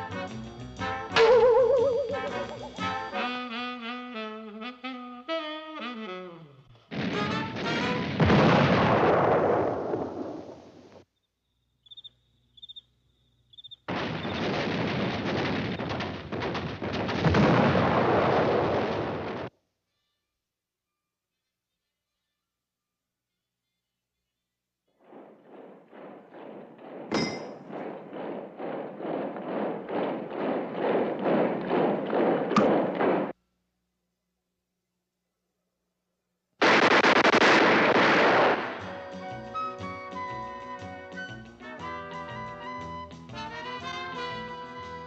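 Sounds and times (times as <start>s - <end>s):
cartoon explosion: 1.1s - 3.9s, 6.9s - 10.6s, 13.9s - 19.5s, 36.6s - 39.1s
cartoon explosion with crackling: 6.9s - 11.0s, 13.9s - 19.5s, 25.0s - 33.4s, 36.6s - 39.5s.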